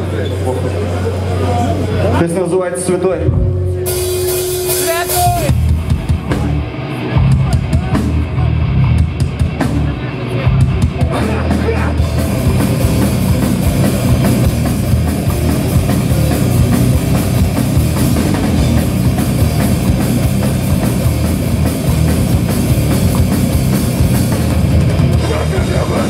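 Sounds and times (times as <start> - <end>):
heavy distorted guitars: 0.0 - 26.0
fast drum beat: 3.9 - 26.0.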